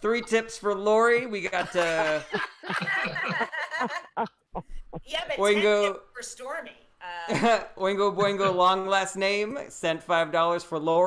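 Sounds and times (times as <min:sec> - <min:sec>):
people laughing and snickering: 0:01.2 - 0:05.0.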